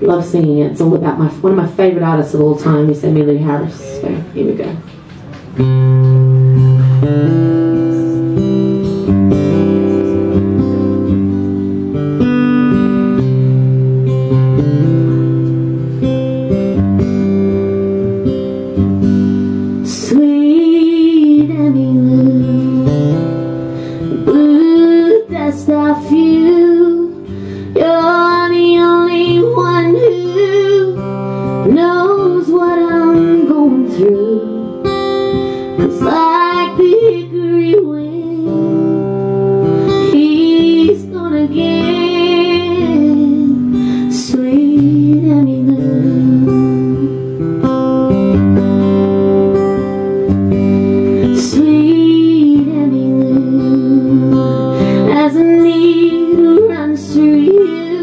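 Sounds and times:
woman singing: 0.0 - 4.9, 19.8 - 23.4, 24.0 - 47.2, 51.2 - 58.0
acoustic guitar strumming: 0.0 - 58.0.

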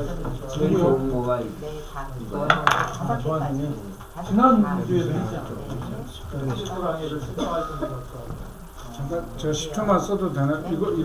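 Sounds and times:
low talk: 0.0 - 11.0.

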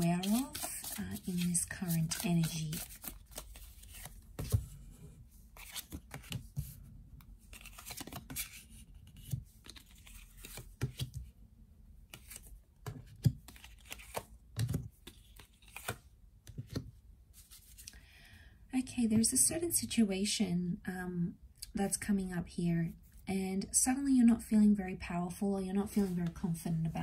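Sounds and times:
cards tapping and sliding: 0.2 - 4.6, 5.6 - 6.7, 7.5 - 11.3, 12.1 - 16.9.

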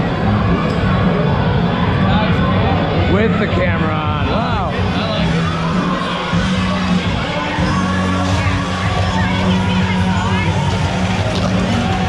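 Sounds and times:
crowd chatter: 0.0 - 12.0
loud music with bass line: 0.0 - 12.0.

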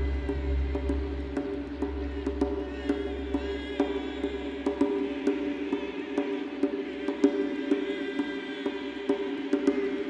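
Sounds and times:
choir chanting low tones: 0.0 - 3.2.

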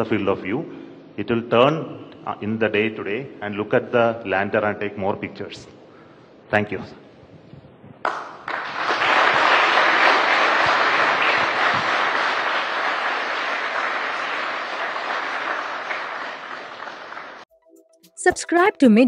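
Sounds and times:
people applauding: 8.0 - 17.5.

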